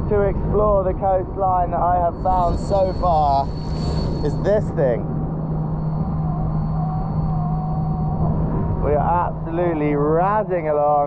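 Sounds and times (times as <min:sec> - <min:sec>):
wind rush on microphone: 0:00.0 - 0:09.4
electric motor hum and whine: 0:00.0 - 0:11.0.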